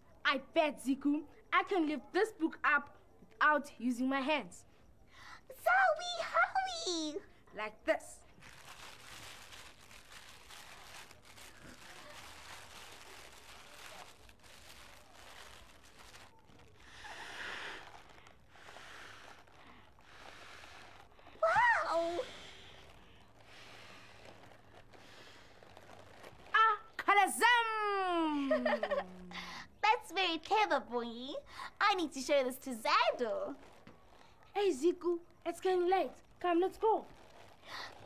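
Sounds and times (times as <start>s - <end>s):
breaths blown into plastic bag: 15.8s - 26.5s.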